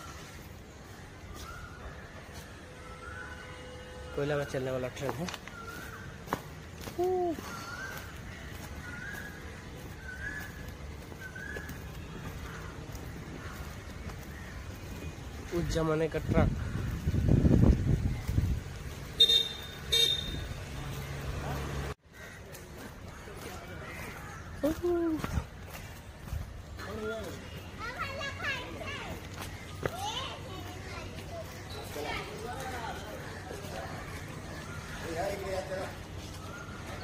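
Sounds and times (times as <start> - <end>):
children calling and chattering: 0.0 - 4.6, 5.2 - 37.0
bird whistling calls: 8.8 - 12.1.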